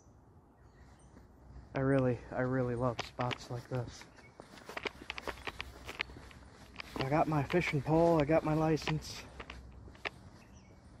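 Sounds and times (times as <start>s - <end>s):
footsteps on dirt and twigs: 1.1s - 11.0s.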